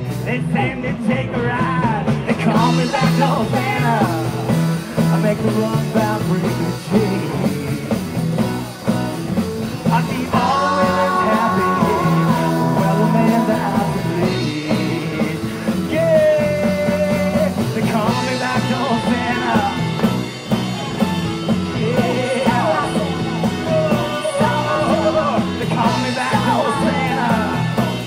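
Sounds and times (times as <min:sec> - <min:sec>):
live rock band: 0:00.0 - 0:28.0
man singing lead: 0:00.0 - 0:28.0
women singing backing vocals: 0:10.3 - 0:14.4, 0:21.8 - 0:27.8.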